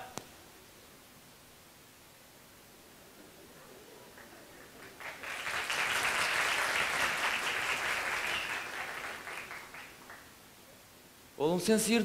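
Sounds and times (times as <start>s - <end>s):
audience clapping: 4.1s - 10.3s.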